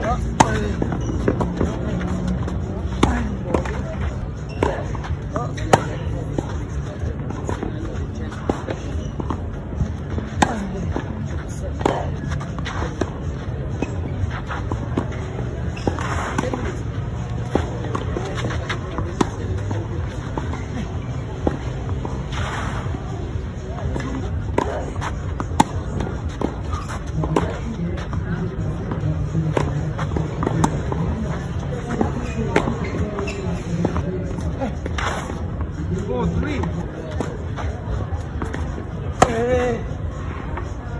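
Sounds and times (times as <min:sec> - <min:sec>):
tennis rackets striking ball: 0:00.0 - 0:06.6, 0:07.3 - 0:22.7, 0:23.8 - 0:35.4, 0:36.3 - 0:39.8.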